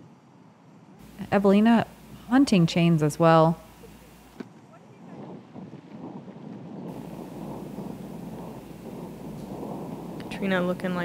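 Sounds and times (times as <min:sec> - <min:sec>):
wind buffeting microphone: 0:01.0 - 0:11.0.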